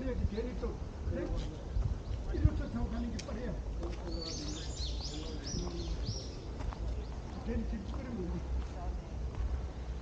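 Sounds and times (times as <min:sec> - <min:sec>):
people talking faintly: 0:00.0 - 0:10.0
footsteps on sandy dirt path: 0:01.2 - 0:10.0.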